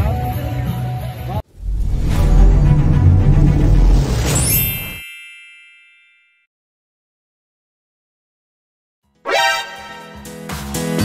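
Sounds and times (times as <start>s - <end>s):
intro music: 1.5s - 4.6s
rising swoosh: 1.5s - 5.0s
bell-like ding: 4.3s - 6.5s.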